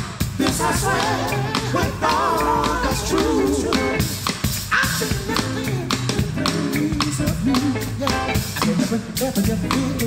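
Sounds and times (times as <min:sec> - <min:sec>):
drum beat: 0:00.0 - 0:10.0
live funk band playing: 0:00.0 - 0:10.0.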